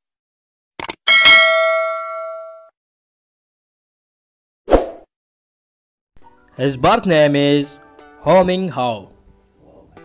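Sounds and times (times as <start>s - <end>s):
notification bell ding: 1.1s - 2.7s.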